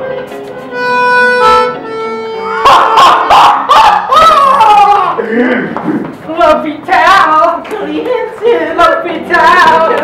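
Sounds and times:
reedy keyboard notes: 0.0s - 3.6s
person crying out loudly: 2.6s - 5.7s.

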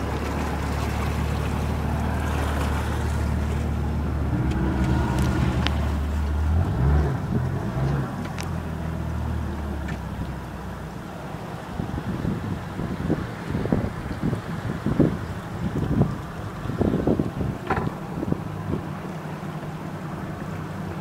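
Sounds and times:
motorboat engine humming: 0.0s - 21.0s
wind and water hiss: 0.0s - 21.0s.

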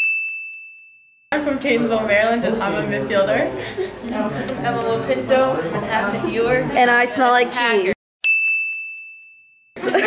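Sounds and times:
bright bell ding: 0.0s - 1.2s, 8.3s - 9.7s.

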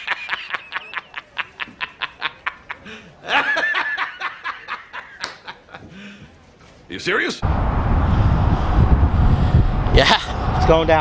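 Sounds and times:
man cackling laughter: 0.0s - 5.8s.

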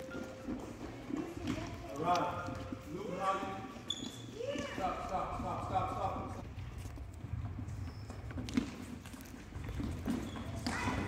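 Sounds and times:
footsteps on hardwood floor: 0.0s - 4.9s.

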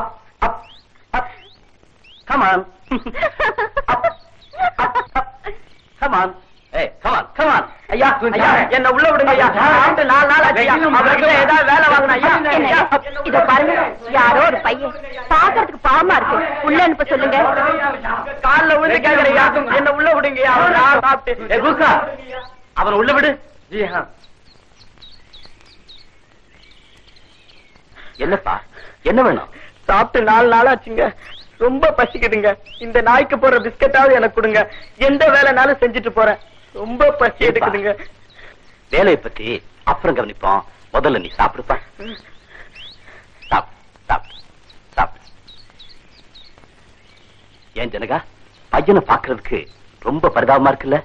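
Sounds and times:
faint background noise: 0.0s - 51.0s
small birds chirping: 0.0s - 51.0s.

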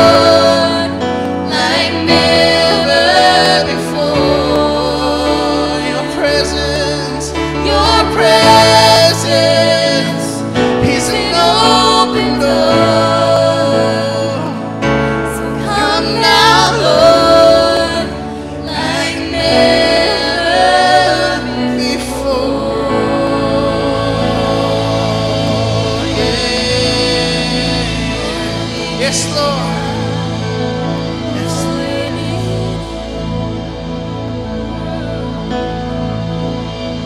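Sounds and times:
women singing: 0.0s - 35.5s
electric guitar chords: 0.0s - 37.0s
keyboard chords: 0.0s - 37.0s.

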